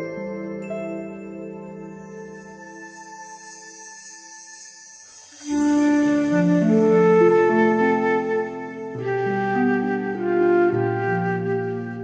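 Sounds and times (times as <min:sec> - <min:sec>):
background music with sustained notes: 0:00.0 - 0:12.0.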